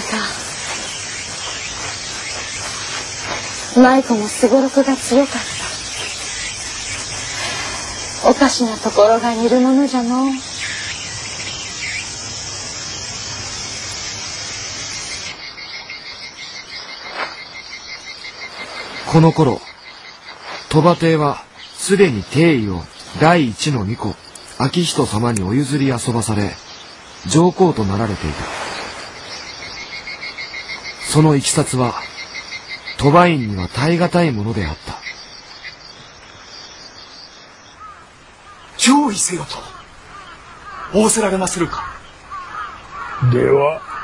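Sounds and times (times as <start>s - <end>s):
faint hiss: 0.0s - 43.8s
insects chirping: 0.0s - 44.0s.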